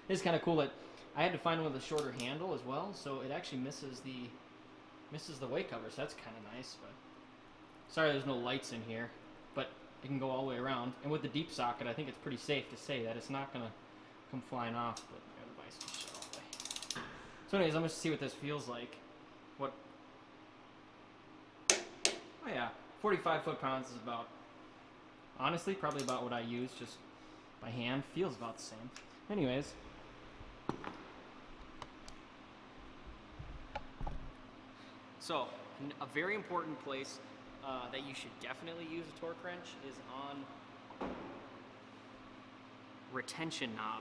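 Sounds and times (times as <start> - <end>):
steady low hum: 0.0 - 44.0
torque wrench ratchet clicking: 15.8 - 17.0.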